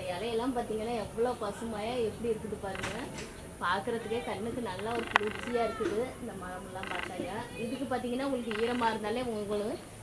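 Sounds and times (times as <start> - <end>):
woman's rasping pulsed calls: 4.7 - 5.9, 6.7 - 7.6, 8.3 - 9.0.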